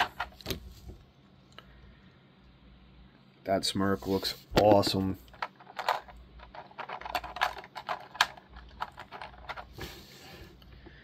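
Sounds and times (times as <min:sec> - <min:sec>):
plastic parts clicking and tapping: 0:05.3 - 0:09.7.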